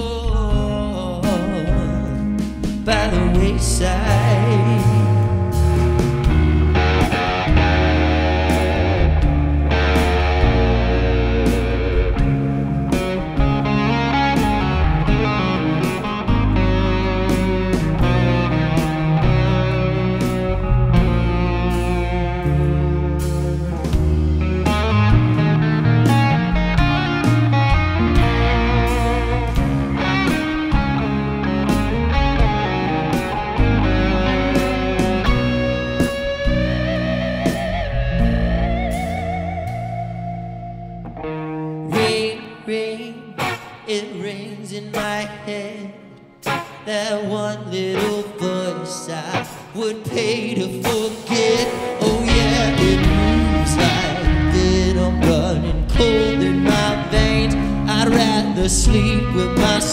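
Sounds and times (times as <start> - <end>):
electric guitar bending notes: 0.0 - 59.9
rock band playing live: 0.0 - 59.9.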